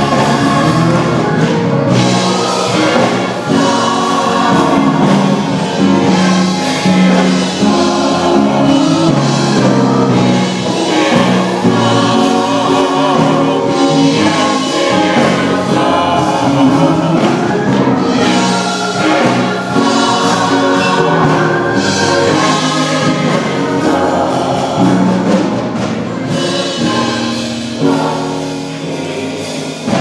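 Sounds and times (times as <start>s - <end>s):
choir singing gospel: 0.0s - 30.0s.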